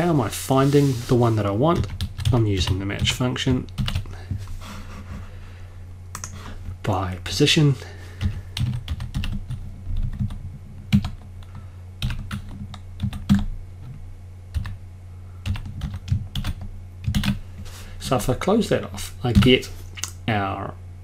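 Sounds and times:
low hum: 0.0 - 21.0
typing on computer keyboard: 8.2 - 11.2, 12.0 - 13.5, 15.5 - 17.4.

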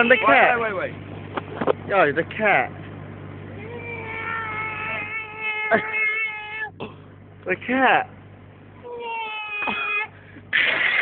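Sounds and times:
man imitating cat meow: 0.0 - 0.6, 3.6 - 6.7.

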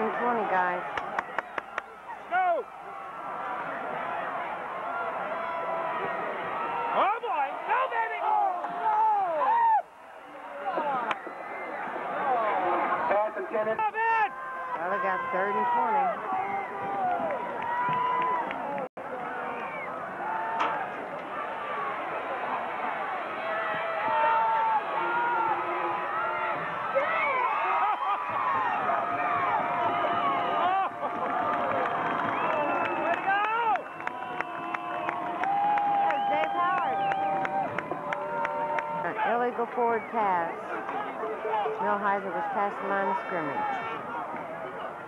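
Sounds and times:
football crowd shouting and cheering: 0.0 - 45.0.

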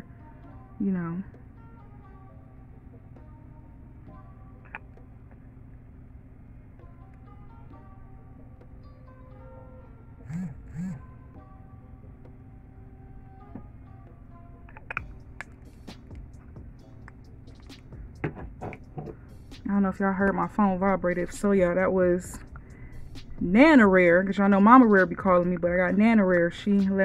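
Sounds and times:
soft background music: 0.0 - 27.0
phone vibration buzzing: 8.5 - 15.4.

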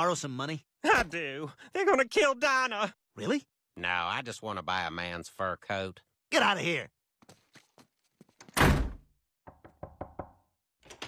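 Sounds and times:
door slamming shut: 8.6 - 9.1
knocks on wooden door: 8.7 - 10.4.

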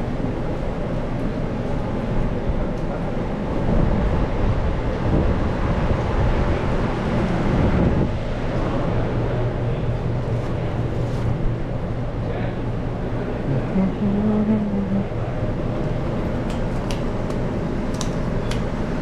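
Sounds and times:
kitchen ventilation rumble: 0.0 - 19.0.

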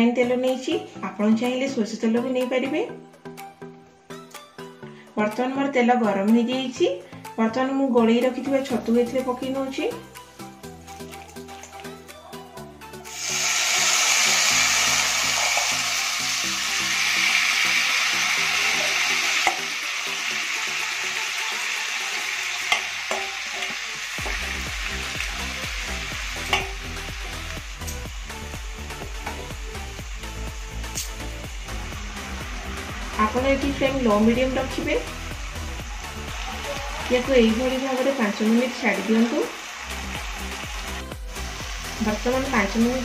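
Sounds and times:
mushrooms sizzling in hot oil: 13.0 - 43.0.

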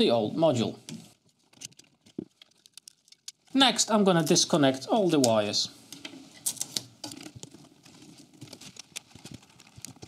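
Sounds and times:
small clicks and rattles: 1.5 - 3.5, 6.4 - 10.0.

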